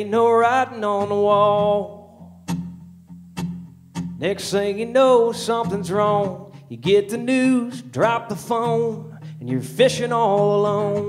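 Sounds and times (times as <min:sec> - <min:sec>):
person singing: 0:00.0 - 0:02.2, 0:04.2 - 0:11.0
acoustic guitar strums: 0:00.0 - 0:11.0.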